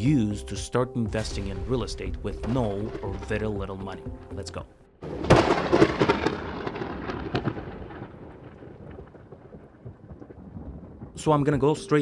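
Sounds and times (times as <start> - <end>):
sharp thunder cracks: 1.2 - 4.4, 5.0 - 12.0
thunder rumble: 1.2 - 12.0.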